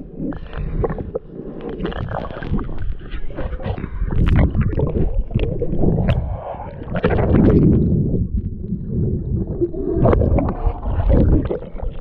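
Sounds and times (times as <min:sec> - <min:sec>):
steady low rumble: 0:00.0 - 0:12.0
water sloshing and gurgling: 0:00.0 - 0:12.0.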